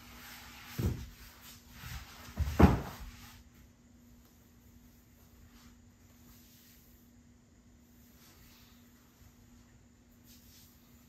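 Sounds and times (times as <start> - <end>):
faint steady hum: 0.0 - 11.0
rustling on yoga mat: 0.0 - 11.0
yoga block thumping down: 2.3 - 3.1.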